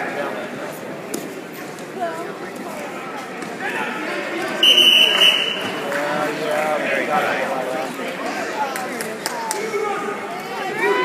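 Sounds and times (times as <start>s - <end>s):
spectators calling out: 3.6s - 5.9s.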